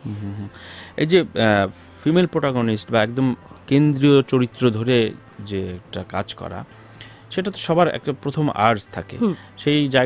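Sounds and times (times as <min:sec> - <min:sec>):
person humming vowel sounds: 0:00.0 - 0:00.6.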